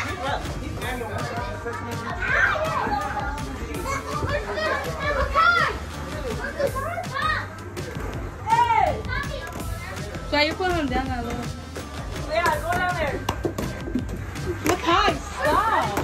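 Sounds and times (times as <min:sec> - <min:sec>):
children playing and calling out: 0:01.3 - 0:10.2.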